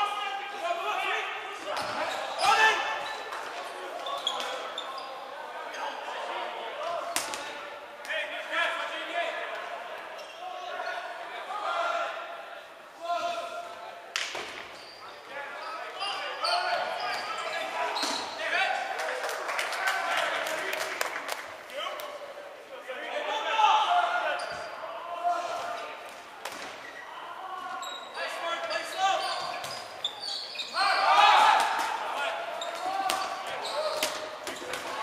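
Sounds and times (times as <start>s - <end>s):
players shouting in a gym: 0.0s - 14.1s, 14.8s - 19.0s, 22.8s - 35.0s
dodgeballs smacking on wooden court: 32.7s - 35.0s.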